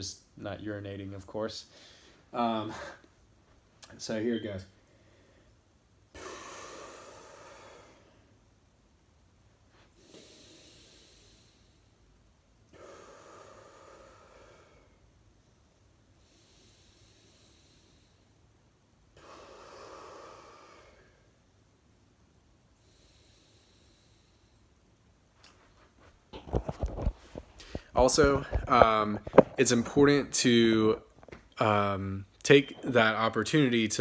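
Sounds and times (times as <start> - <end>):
man breathing out hard: 6.1 - 8.3, 12.7 - 15.0, 19.2 - 21.2.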